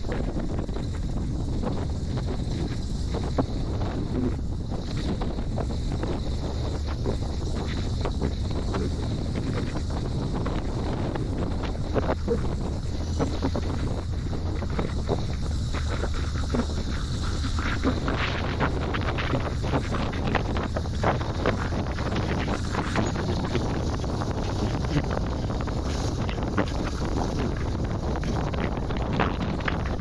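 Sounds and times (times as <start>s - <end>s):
off-road vehicle engine running: 0.0s - 30.0s
wind buffeting microphone: 0.0s - 30.0s.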